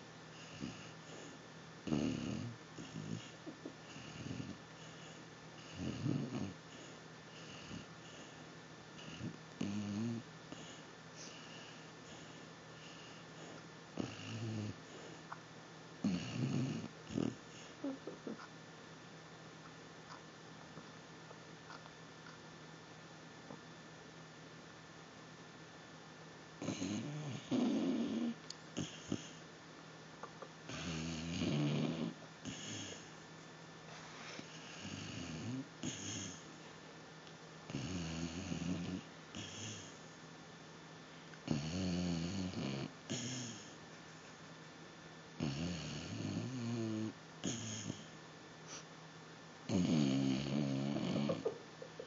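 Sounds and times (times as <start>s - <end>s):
dog snoring: 0.3s - 8.4s, 9.0s - 15.4s, 16.0s - 18.5s, 26.6s - 29.4s, 30.2s - 33.2s, 34.3s - 36.6s, 37.7s - 40.1s, 41.4s - 43.8s, 45.4s - 48.8s, 49.6s - 51.6s
dog breathing: 0.4s - 8.4s, 10.5s - 15.4s, 30.7s - 33.2s, 33.9s - 36.6s, 37.7s - 40.1s.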